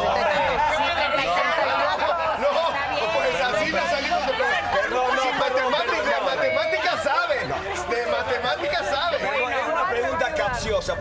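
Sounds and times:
overlapping adult chatter: 0:00.0 - 0:11.0.

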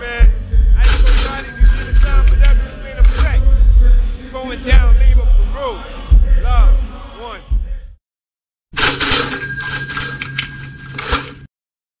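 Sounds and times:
loud bell-like ringing: 0:00.8 - 0:03.3, 0:08.8 - 0:11.5.

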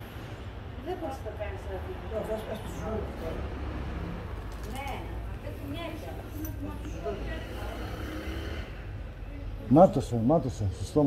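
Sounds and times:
road traffic rumble: 0:00.0 - 0:11.0
faint indistinct voices: 0:00.7 - 0:11.0.

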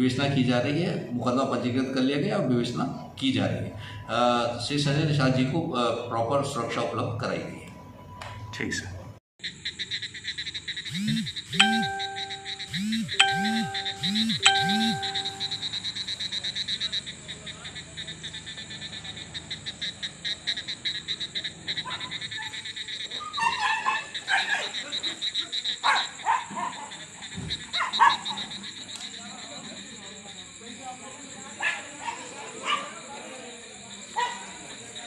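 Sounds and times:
frogs calling: 0:09.4 - 0:35.0
insects calling: 0:09.4 - 0:35.0.

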